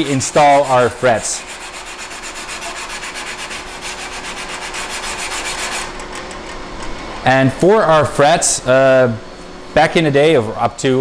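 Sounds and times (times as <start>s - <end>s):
sanding guitar fretboard: 0.0s - 5.9s
faint steady hum: 0.0s - 11.0s.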